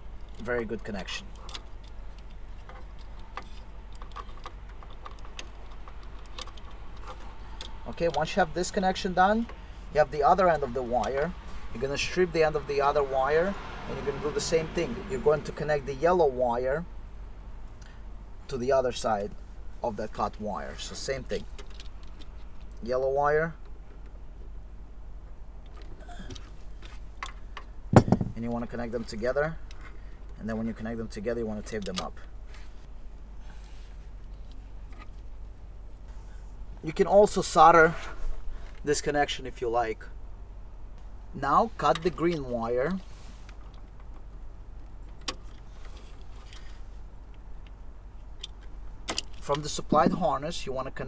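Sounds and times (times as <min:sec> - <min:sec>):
low steady hum: 0:00.0 - 0:51.0.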